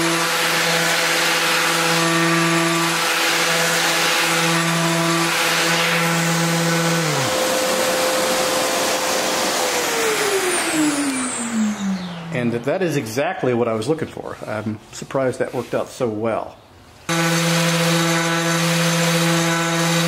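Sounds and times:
machine whining and hissing: 0:00.0 - 0:12.5
orbital sander on wood: 0:00.0 - 0:12.5, 0:17.1 - 0:20.0.

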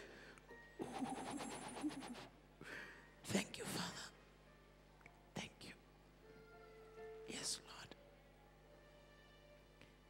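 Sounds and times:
person whispering: 0:00.8 - 0:02.3, 0:05.4 - 0:05.8, 0:07.3 - 0:08.0.

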